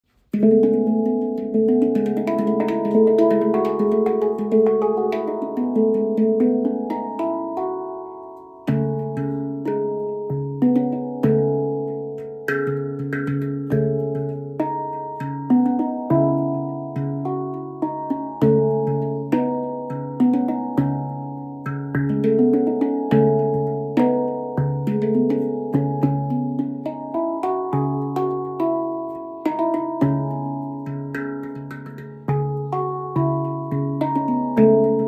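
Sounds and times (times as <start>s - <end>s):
handpan notes ringing: 0.2s - 35.0s.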